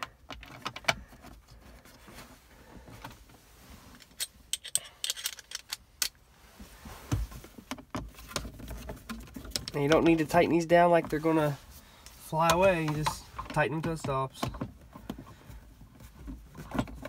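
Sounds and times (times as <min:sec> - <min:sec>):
screws and plastic rattling: 0:03.9 - 0:06.2.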